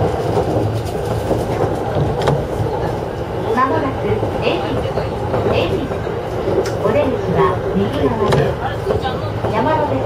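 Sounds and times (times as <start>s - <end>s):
electric train rolling rumble: 0.0s - 10.0s
recorded onboard announcement: 0.1s - 10.0s.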